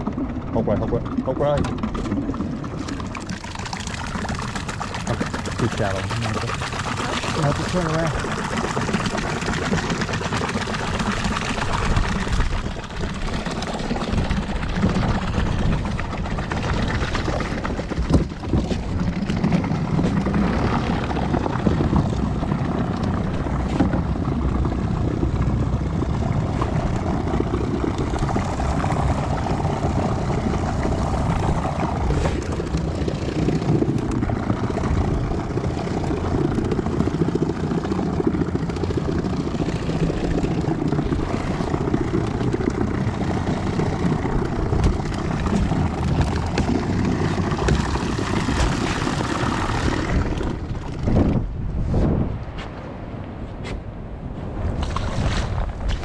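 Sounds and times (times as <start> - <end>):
boat motor running: 0.0 - 56.0.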